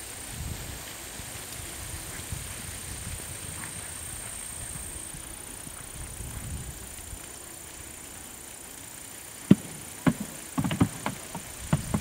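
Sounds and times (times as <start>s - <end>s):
horse hooves thudding on sand: 0.6s - 7.1s, 9.5s - 12.0s.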